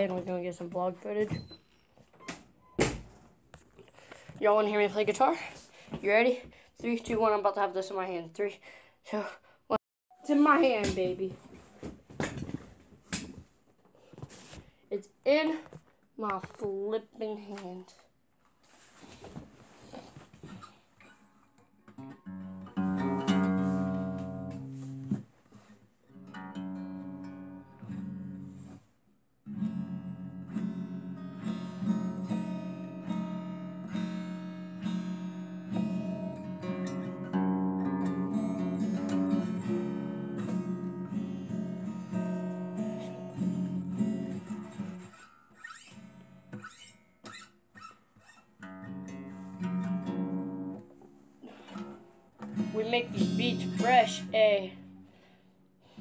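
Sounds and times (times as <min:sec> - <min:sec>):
acoustic guitar strumming: 0:21.9 - 0:25.2, 0:29.5 - 0:55.2.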